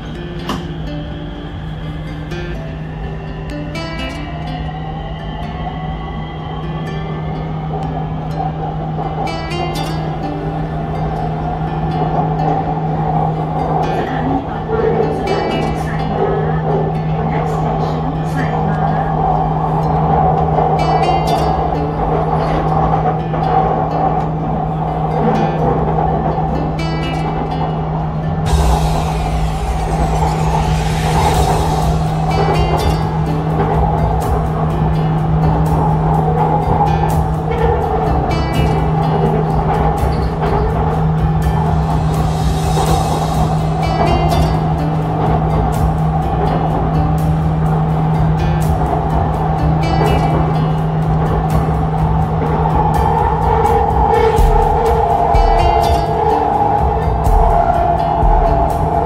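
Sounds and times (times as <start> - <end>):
background music: 0.0 - 59.0
electric train humming: 0.0 - 59.0.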